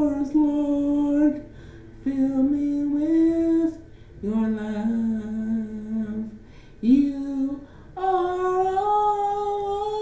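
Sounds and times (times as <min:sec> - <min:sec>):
woman singing long notes: 0:00.0 - 0:10.0
woman breathing: 0:01.4 - 0:02.0, 0:03.8 - 0:04.2, 0:06.4 - 0:06.8, 0:07.6 - 0:08.0.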